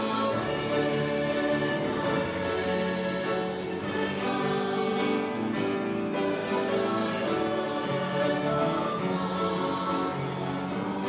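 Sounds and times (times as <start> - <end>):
youth choir singing sustained chords: 0.0 - 11.0.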